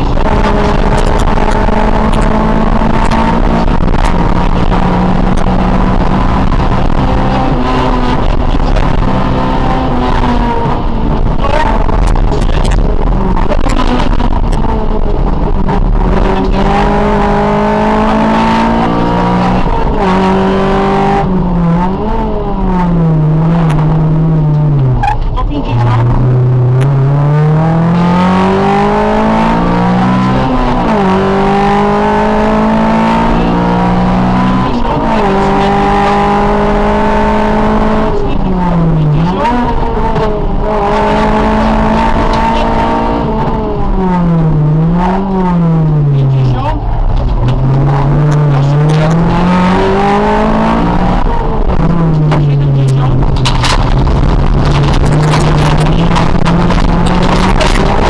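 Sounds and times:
rally car engine revving through gears: 0.0 - 58.0.

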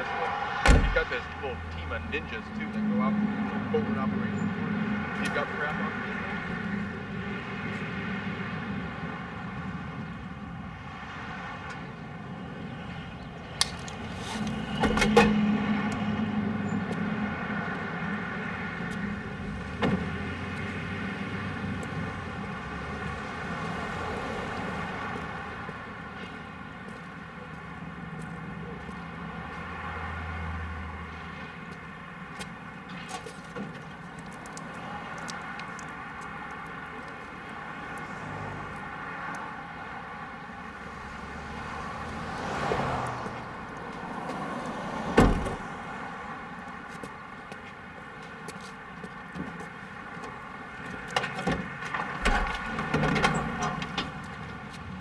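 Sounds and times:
steady drone: 0.0 - 9.8
street traffic: 0.0 - 55.0
loud thump: 0.6 - 1.2.

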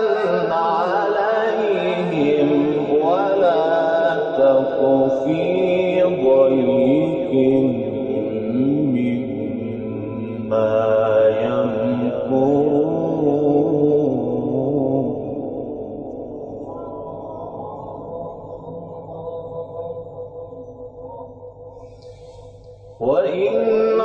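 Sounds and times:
man reciting melodically: 0.0 - 24.0.

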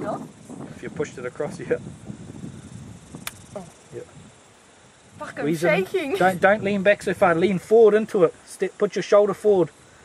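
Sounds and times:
sharp small click: 3.2 - 3.5.

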